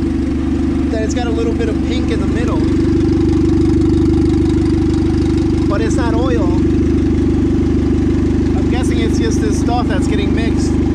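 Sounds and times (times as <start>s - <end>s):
car engine idling: 0.0s - 10.9s.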